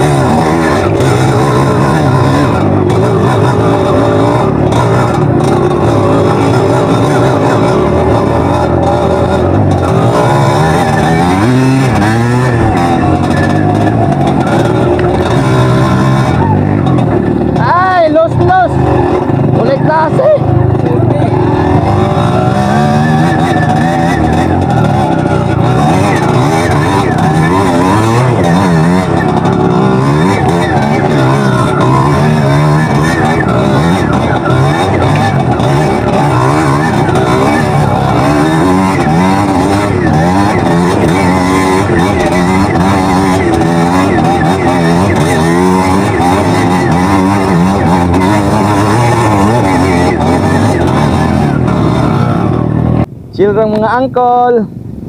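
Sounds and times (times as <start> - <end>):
dirt bike engine revving: 0.0 - 54.1.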